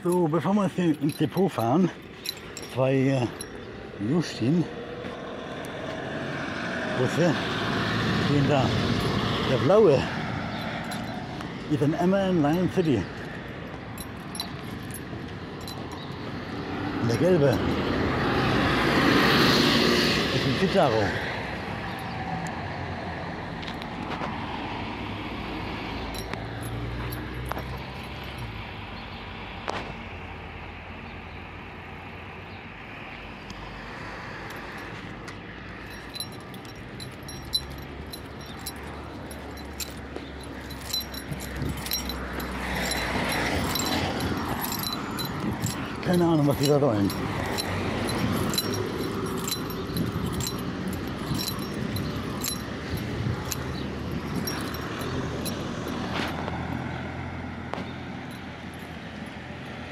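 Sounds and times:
keys jingling: 0:00.0 - 0:04.6, 0:08.3 - 0:18.2, 0:26.0 - 0:28.5, 0:34.4 - 0:57.1, 0:57.8 - 0:59.9
bus diesel engine droning: 0:35.8 - 0:59.9.

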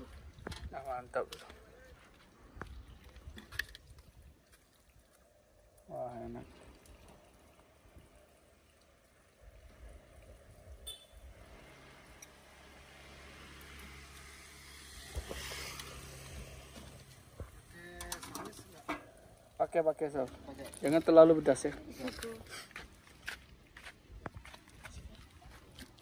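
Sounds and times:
motorcycle engine passing: 0:11.1 - 0:17.5.

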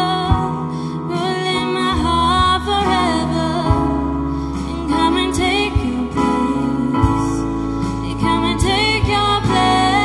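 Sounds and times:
electric bass low notes: 0:00.0 - 0:10.0
keyboard and piano: 0:00.0 - 0:10.0
woman singing: 0:00.0 - 0:10.0.

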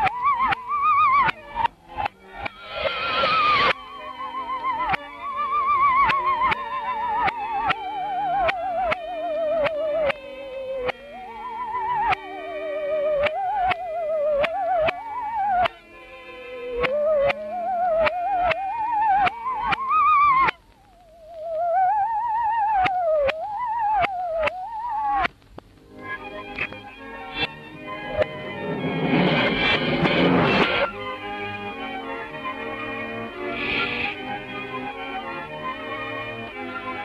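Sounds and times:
musical saw melody: 0:00.0 - 0:20.5, 0:25.9 - 0:37.0
held accompaniment notes: 0:00.0 - 0:37.0
loud noisy sound effect burst: 0:02.3 - 0:03.8, 0:27.3 - 0:31.1.

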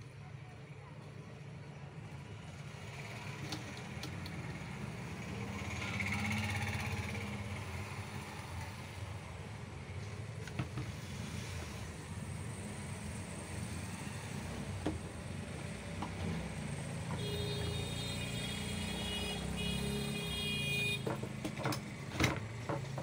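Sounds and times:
high horn-like tone: 0:17.2 - 0:21.1.

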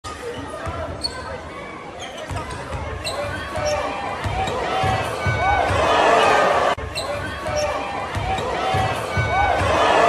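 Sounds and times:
sneaker squeaks: 0:00.2 - 0:05.4, 0:06.9 - 0:09.3.

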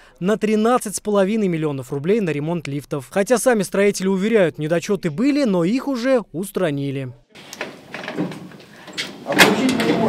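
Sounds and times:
metal lift doors clicking and knocking: 0:07.4 - 0:10.0.

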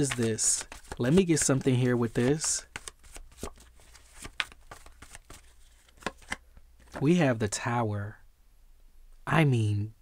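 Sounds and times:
cards being shuffled: 0:00.0 - 0:07.0.

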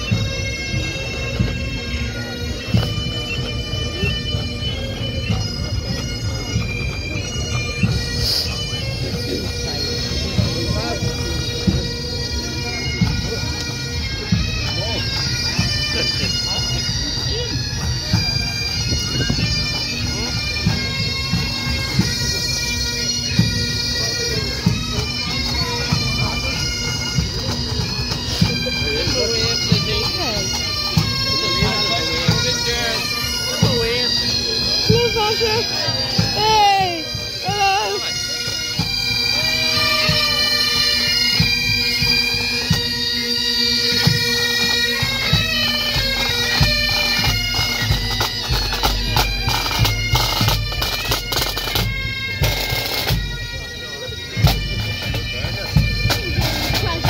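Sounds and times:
drums beating time: 0:00.0 - 0:43.1, 0:43.8 - 0:57.0
bagpipes with drone: 0:00.0 - 0:57.0.

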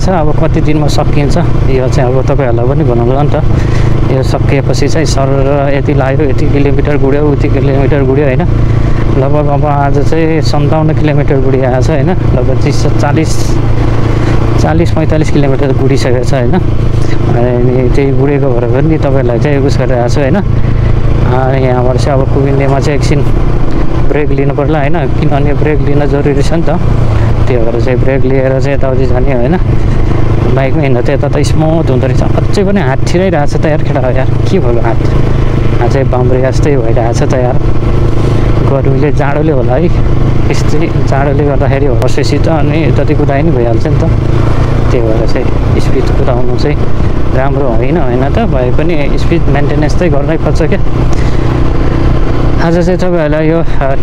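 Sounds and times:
man talking: 0:00.0 - 0:23.4, 0:24.0 - 0:37.7, 0:38.5 - 0:44.2, 0:44.8 - 0:51.4, 0:52.5 - 0:54.0
motorcycle engine cruising: 0:00.0 - 0:54.0.

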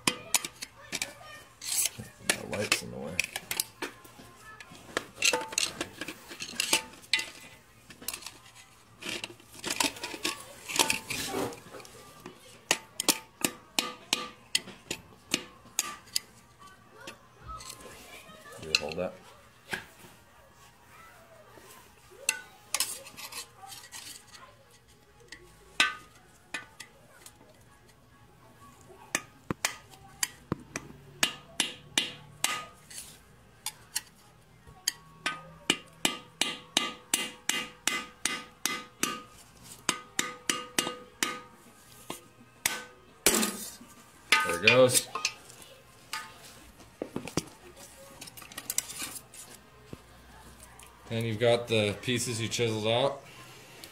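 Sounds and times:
hammer striking metal: 0:13.4 - 0:14.4, 0:31.2 - 0:32.8, 0:35.2 - 0:39.3, 0:39.9 - 0:41.5.

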